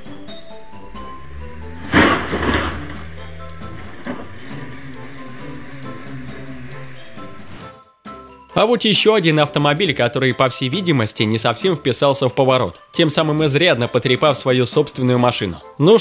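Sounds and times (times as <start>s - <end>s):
car crash: 0.0s - 7.8s
background music: 0.0s - 16.0s.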